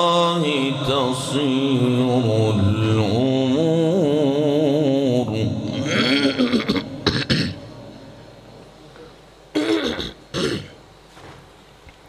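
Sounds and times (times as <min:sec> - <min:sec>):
man chanting recitation: 0:00.0 - 0:08.5
man clearing throat: 0:05.7 - 0:07.8, 0:09.5 - 0:10.8.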